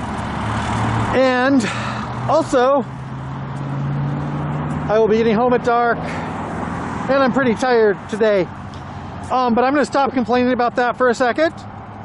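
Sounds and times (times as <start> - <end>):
outdoor traffic noise: 0.0 - 12.0
vehicle engine humming: 0.0 - 12.0.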